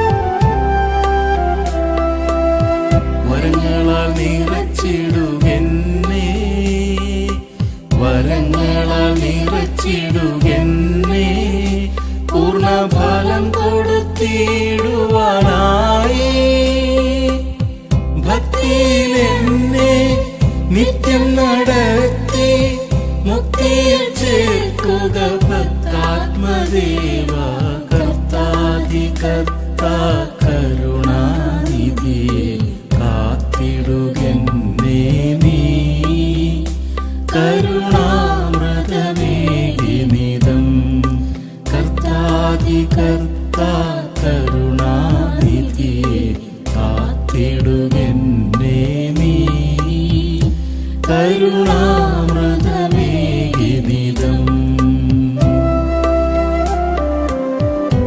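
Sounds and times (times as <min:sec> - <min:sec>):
person singing chant-like melody: 0:37.3 - 0:55.7.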